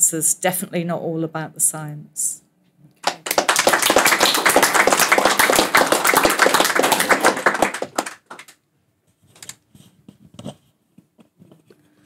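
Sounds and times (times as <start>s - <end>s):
audience applauding: 3.0s - 8.6s.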